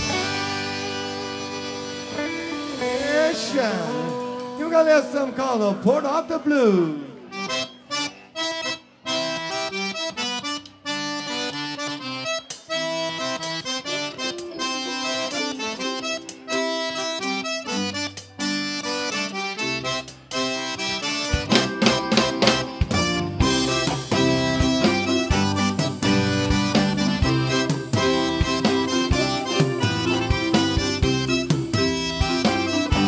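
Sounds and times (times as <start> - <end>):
drum kit: 0.0 - 5.9, 12.5 - 33.0
electric bass: 0.0 - 8.5, 12.7 - 33.0
button accordion chords: 0.0 - 33.0.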